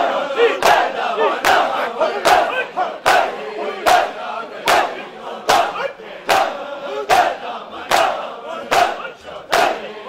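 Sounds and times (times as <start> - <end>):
crowd of men shouting: 0.0 - 10.0
hands slapping chests in unison: 0.6 - 9.9.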